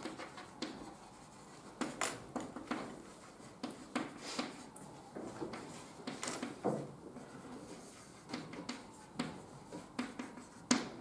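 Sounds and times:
chalk scratching on blackboard: 0.0s - 4.8s, 7.2s - 11.0s
sharp chalk taps: 0.0s - 11.0s.

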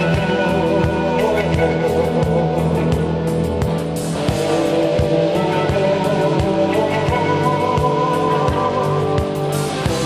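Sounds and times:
electric guitar with bent notes: 0.0s - 10.0s
steady drum beat: 0.0s - 10.0s.

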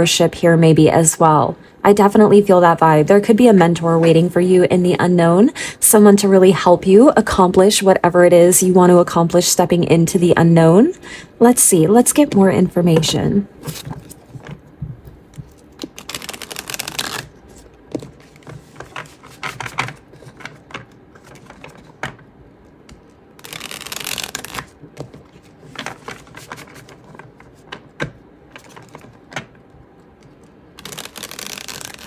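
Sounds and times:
cards being shuffled: 13.6s - 29.6s, 30.2s - 32.0s.

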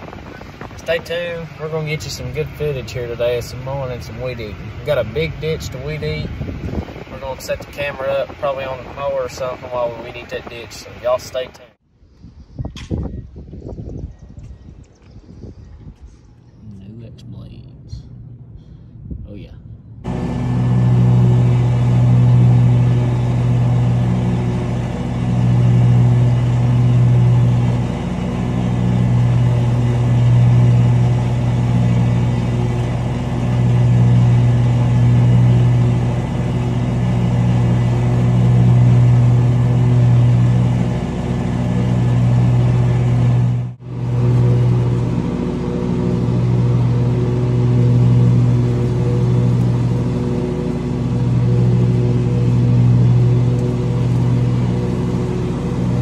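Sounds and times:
riding mower engine running: 0.0s - 11.8s, 19.9s - 56.0s.

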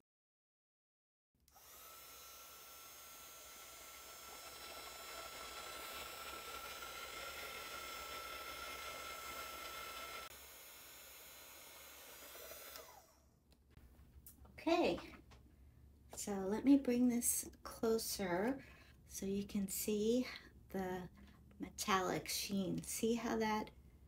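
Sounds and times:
heat gun fan whining: 1.5s - 13.4s.

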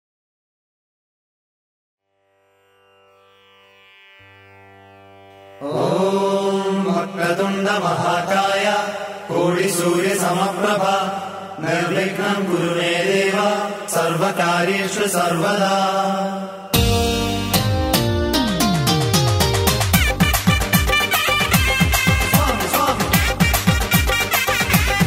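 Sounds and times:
mantra chanting with music: 5.5s - 16.8s, 21.8s - 24.3s
plucked-string notes: 16.8s - 22.8s.

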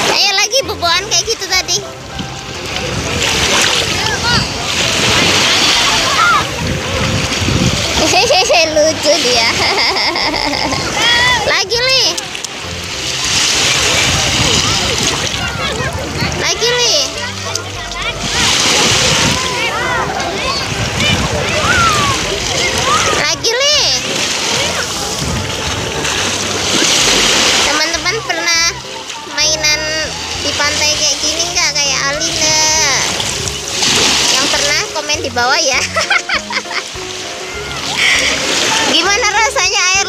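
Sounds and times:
feet splashing in shallow surf: 1.0s - 40.0s
small waves washing on sand: 1.0s - 40.0s.

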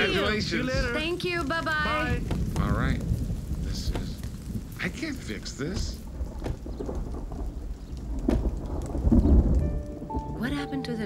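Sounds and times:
low thunder rumble: 0.0s - 11.0s
steady rain falling: 0.0s - 11.0s.

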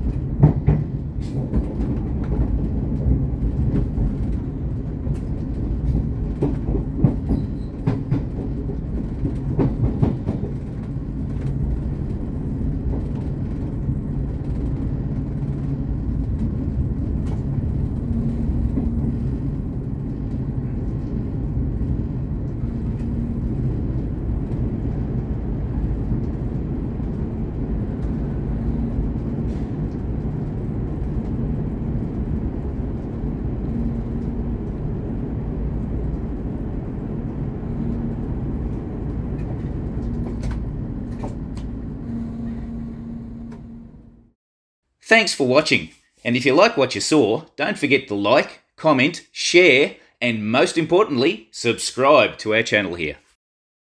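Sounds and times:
train rumbling on rails: 0.0s - 44.4s.

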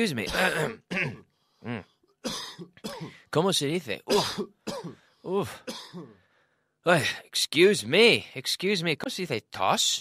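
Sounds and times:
man coughing: 0.2s - 3.3s, 4.1s - 6.2s.

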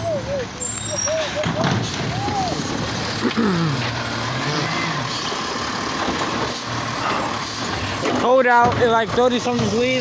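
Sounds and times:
garbage truck engine and hydraulics: 0.0s - 10.0s.

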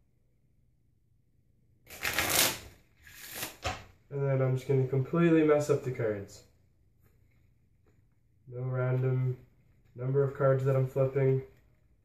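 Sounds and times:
playing cards shuffled by hand: 1.9s - 3.9s.

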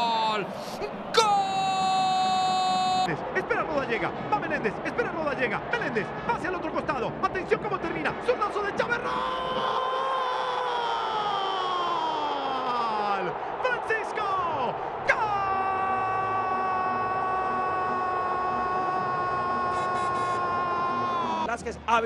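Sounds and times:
stadium crowd noise: 0.0s - 21.5s.

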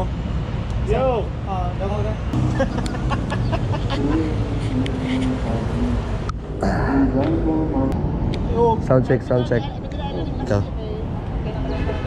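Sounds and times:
people talking: 3.7s - 12.0s.

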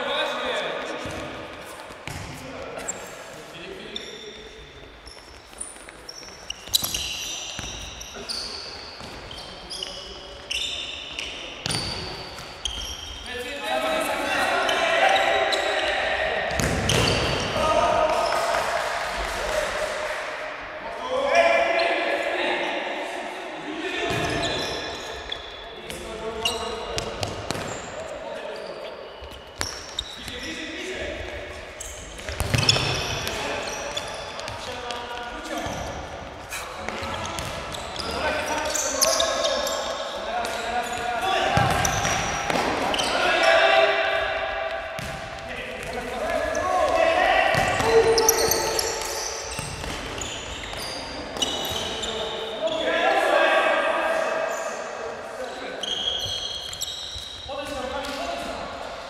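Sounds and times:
ball kicked and bouncing on court: 1.0s - 2.4s, 5.1s - 7.9s, 16.5s - 17.6s, 27.0s - 27.9s, 32.1s - 35.0s, 36.8s - 38.1s, 41.5s - 43.0s, 44.7s - 51.9s
players shouting: 40.4s - 44.8s, 46.0s - 49.0s.

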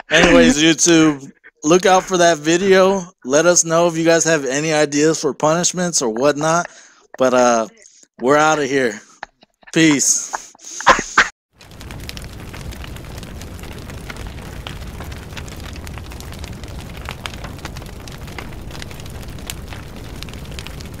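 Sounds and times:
crackling rumble with pops: 1.6s - 2.9s, 11.5s - 21.0s.

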